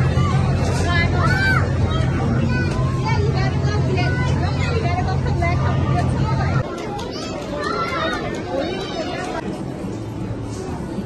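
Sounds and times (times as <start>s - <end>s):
low electronic drone: 0.0s - 6.6s
children's voices: 0.0s - 9.5s
chatter: 0.0s - 11.0s.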